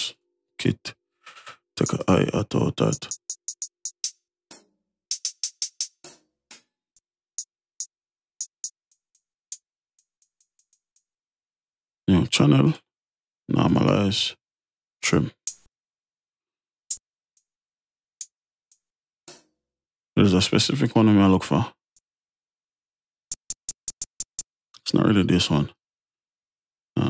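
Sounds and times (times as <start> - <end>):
faint high-pitched hi-hat ticks: 2.9 - 4.2, 23.3 - 24.5.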